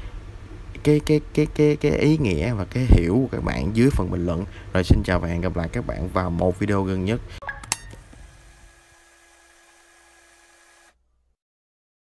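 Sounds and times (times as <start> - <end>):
faint background hiss: 0.0 - 7.4
faint hum: 0.0 - 11.4.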